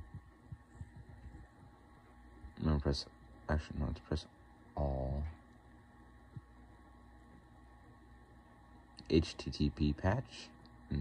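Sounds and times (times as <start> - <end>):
computer hum: 0.0 - 11.0.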